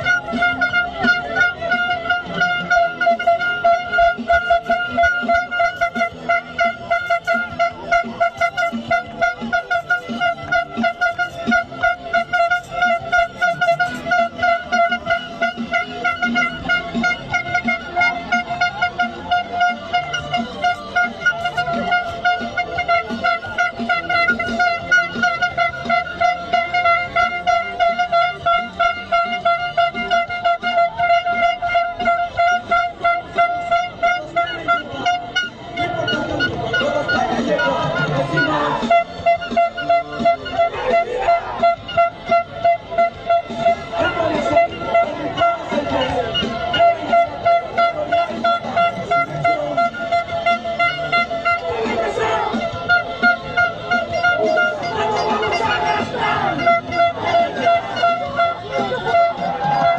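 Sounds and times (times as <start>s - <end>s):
fast pulsing beat: 0.0s - 59.9s
steady horn tone: 0.0s - 59.9s.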